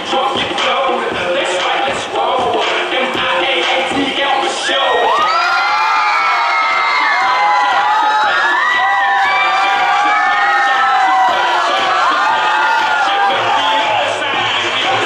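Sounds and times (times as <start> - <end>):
dance music: 0.0 - 15.0
crowd cheering and screaming: 4.5 - 15.0.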